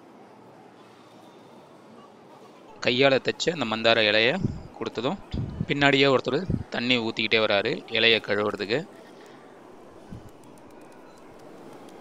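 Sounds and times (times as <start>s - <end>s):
dining hall hubbub: 0.0s - 12.0s.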